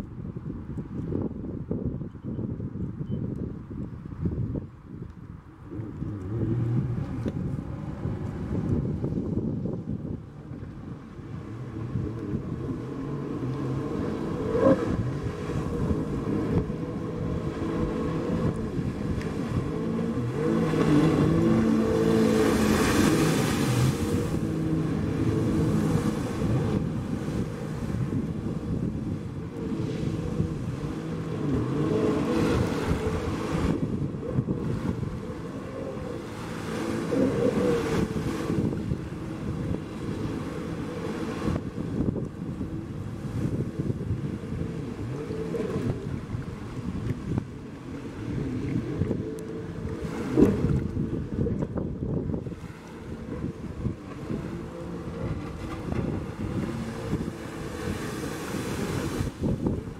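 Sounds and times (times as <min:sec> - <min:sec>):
wind on microphone: 0:00.0 - 0:59.9
rushing water: 0:03.6 - 0:59.9
jet ski engine running hard: 0:04.1 - 0:59.9.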